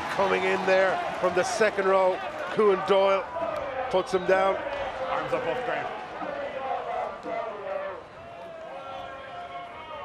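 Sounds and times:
low crowd murmur: 0.0s - 10.0s.

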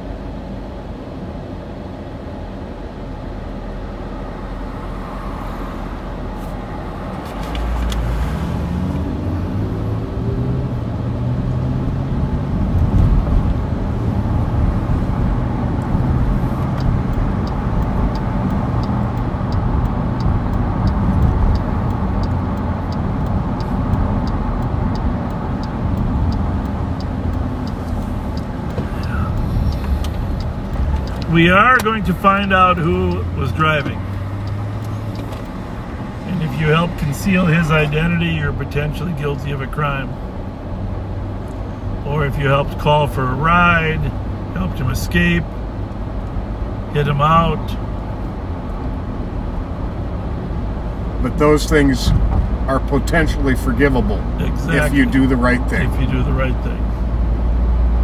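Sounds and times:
car engine: 0.0s - 58.0s
tyres on road: 0.0s - 58.0s
faint regular ticking: 12.7s - 50.0s.

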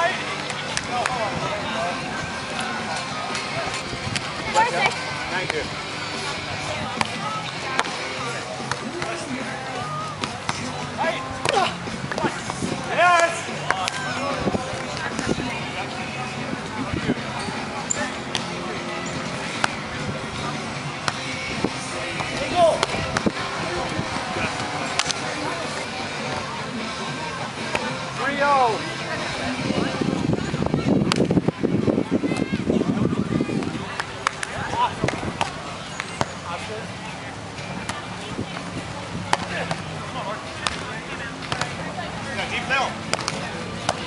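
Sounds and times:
background music: 0.0s - 35.0s
chatter: 0.0s - 44.0s
voices: 0.0s - 44.0s
hands slapping volleyball: 24.6s - 25.2s, 43.1s - 44.0s.

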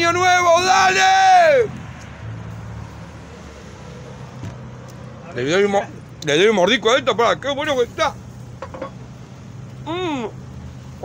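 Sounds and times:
road traffic engine hum: 0.0s - 11.0s.

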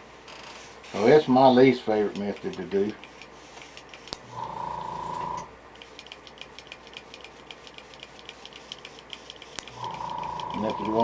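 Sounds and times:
fast light ticks: 2.1s - 4.3s, 5.8s - 11.0s.

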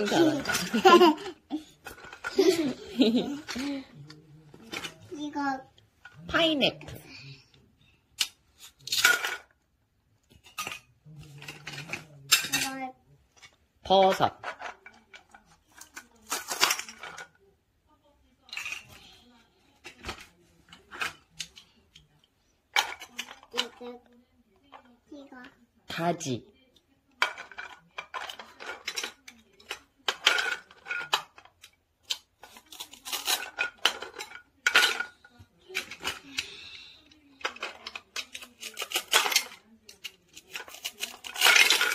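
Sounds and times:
plastic toys clattering on a board: 0.0s - 7.0s, 8.1s - 9.6s, 10.2s - 17.4s, 18.4s - 25.6s, 27.1s - 41.9s.

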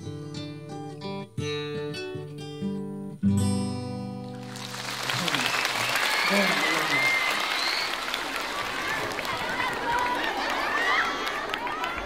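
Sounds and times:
audience applauding: 4.3s - 12.0s
shouts and cheers: 4.4s - 12.0s.

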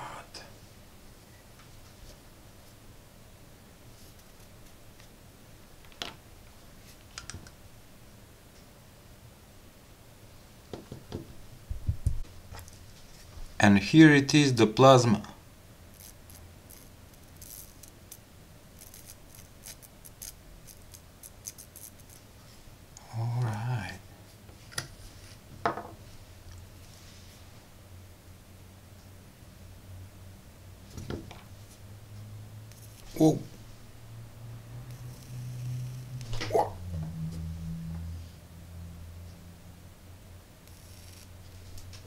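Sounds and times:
faint low hum: 0.0s - 42.0s
electrical sparks crackling: 15.9s - 18.2s, 18.8s - 22.2s, 34.9s - 36.5s, 40.6s - 42.0s
tesla coil humming: 31.6s - 42.0s.

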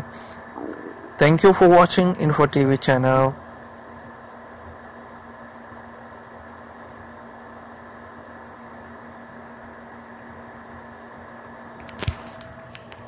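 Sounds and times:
microphone hiss: 0.0s - 3.4s
constant low hum: 0.0s - 13.0s.

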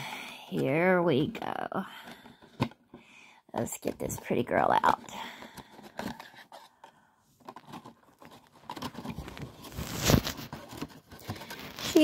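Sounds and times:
plastic crackle: 7.4s - 12.0s
plastic cup clicks and scrapes: 7.4s - 12.0s.

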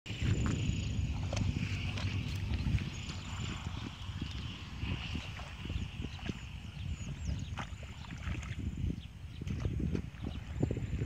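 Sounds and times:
wind rumbling on microphone: 0.1s - 11.0s.

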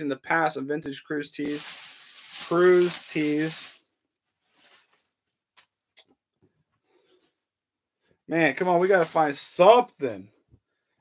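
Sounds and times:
cotton t-shirt rustling: 1.4s - 5.2s, 8.6s - 9.4s.

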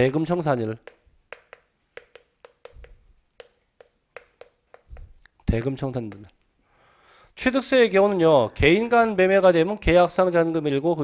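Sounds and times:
chalk tapping on chalkboard: 0.0s - 6.4s.

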